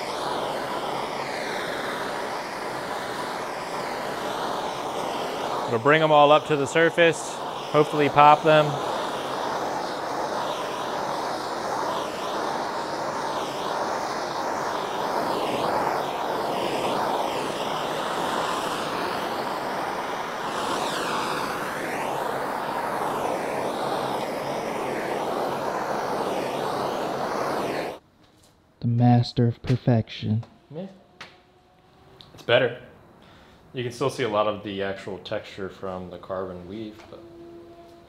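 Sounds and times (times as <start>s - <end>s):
gas torch hissing: 0.0s - 28.0s.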